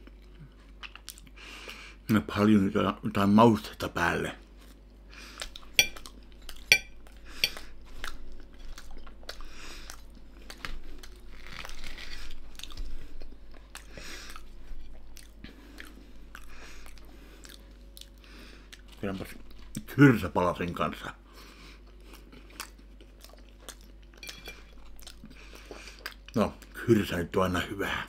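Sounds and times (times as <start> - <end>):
person chewing and crunching food: 0.0 - 1.9, 4.4 - 20.0, 21.2 - 26.8
cutlery clinking on plate: 5.8 - 6.0, 6.7 - 7.6, 24.2 - 24.8.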